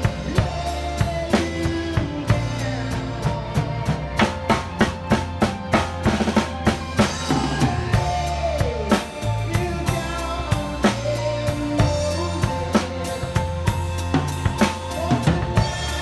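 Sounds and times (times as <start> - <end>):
drum kit playing loud: 0.0 - 16.0
live rock band playing: 0.0 - 16.0.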